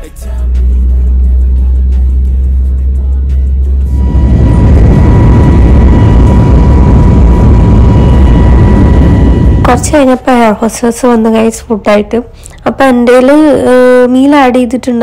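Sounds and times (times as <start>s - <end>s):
steady high whine: 0.0s - 14.2s
jet engines roaring: 3.8s - 10.5s.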